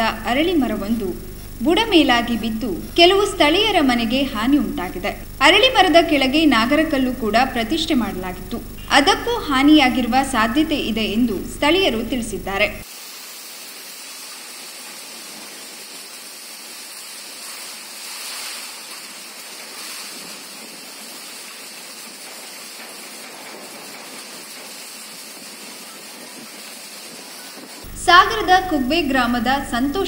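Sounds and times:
heavy rain hiss: 0:00.0 - 0:30.0.

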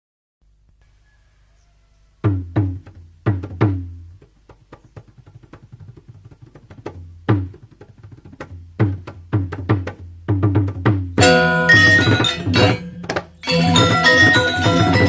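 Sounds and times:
gamelan percussion strikes: 0:11.2 - 0:15.0.

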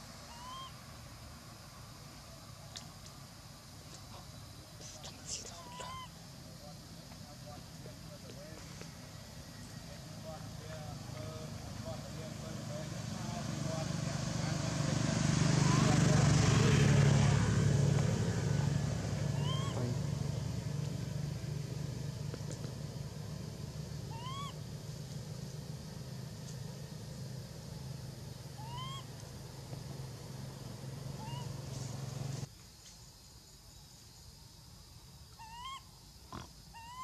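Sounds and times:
vehicle engine passing: 0:07.9 - 0:32.5
short rising call: 0:15.5 - 0:16.1, 0:19.3 - 0:20.2.

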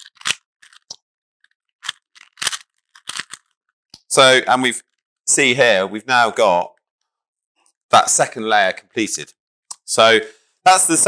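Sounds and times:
plastic puzzle cube clicking: 0:00.0 - 0:01.0, 0:01.8 - 0:03.5.

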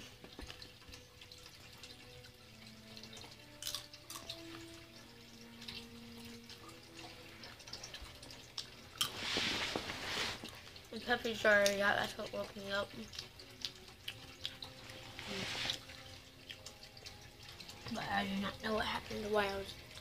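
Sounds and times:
coffee maker dripping and gurgling: 0:00.0 - 0:20.0.

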